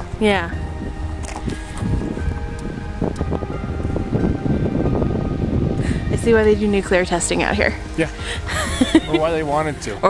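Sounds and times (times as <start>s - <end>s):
faint background music: 0.0s - 10.0s
wind buffeting microphone: 0.0s - 10.0s.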